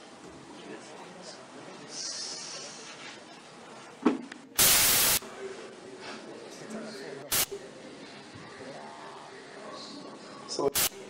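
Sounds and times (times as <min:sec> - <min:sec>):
burst of static hiss: 0:04.6 - 0:05.2, 0:07.3 - 0:07.6, 0:10.8 - 0:11.0.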